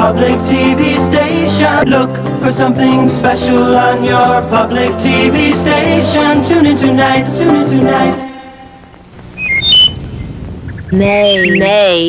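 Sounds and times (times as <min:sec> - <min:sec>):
tape hiss: 0:00.0 - 0:12.0
faint high blips: 0:09.1 - 0:12.0
high bird-like chirps: 0:09.3 - 0:11.9.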